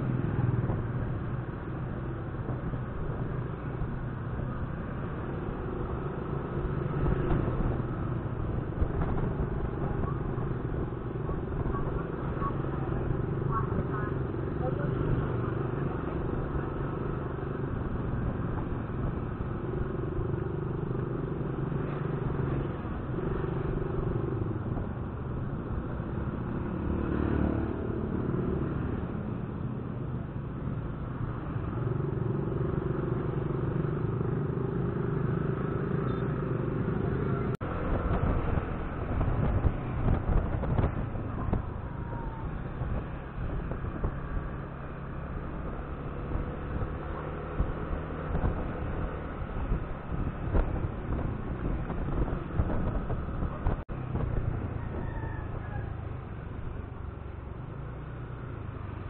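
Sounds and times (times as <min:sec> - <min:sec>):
road noise: 0:00.0 - 0:59.0.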